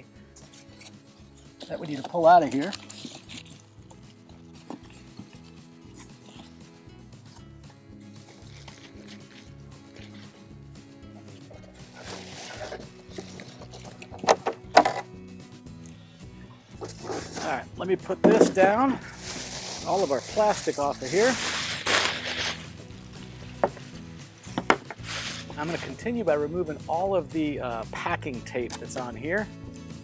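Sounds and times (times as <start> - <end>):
soft background music: 0.0 - 30.0
rustle of packaging: 1.6 - 3.7, 11.9 - 14.2, 19.0 - 24.0, 25.0 - 26.0
polystyrene foam squeaks: 1.6 - 3.8, 8.2 - 10.4, 11.8 - 14.2, 16.8 - 26.1.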